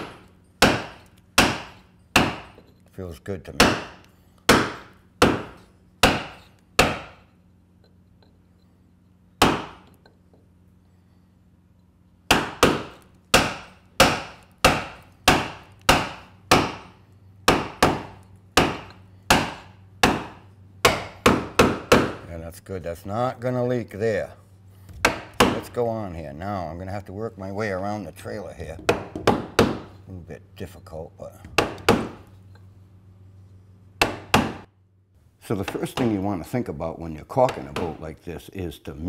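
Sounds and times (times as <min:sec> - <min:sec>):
mallet tapping caulking iron: 0:00.0 - 0:02.7, 0:03.6 - 0:07.2, 0:12.3 - 0:22.3, 0:28.8 - 0:29.9.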